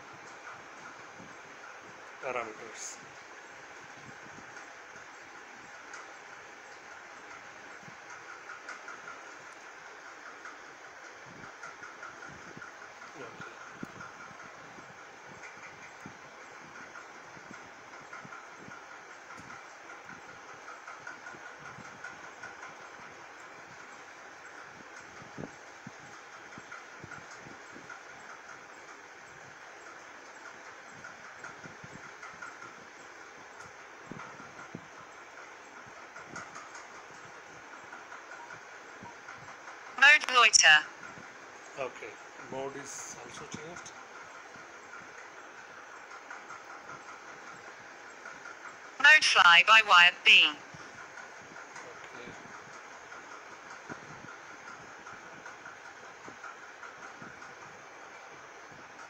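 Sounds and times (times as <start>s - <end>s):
mechanical room hum: 0.0s - 59.0s.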